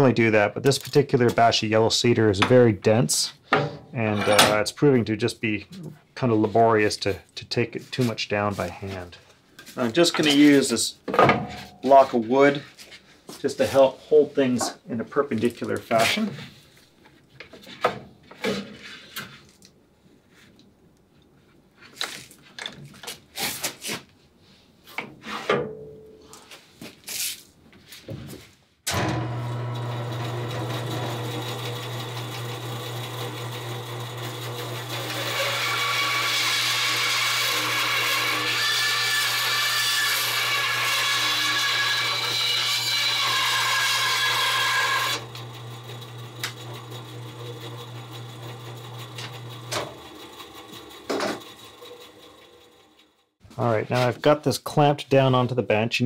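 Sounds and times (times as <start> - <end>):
bandsaw cutting wood: 28.9 - 53.1.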